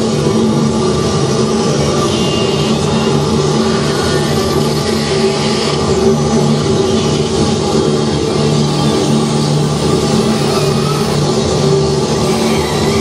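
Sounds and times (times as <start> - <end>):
hissy electronic noise wash: 0.0 - 13.0
low droning hums: 0.0 - 13.0.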